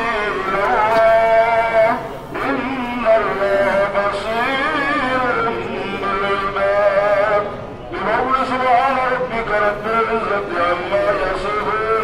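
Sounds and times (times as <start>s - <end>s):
person chanting a devotional song: 0.0s - 12.0s.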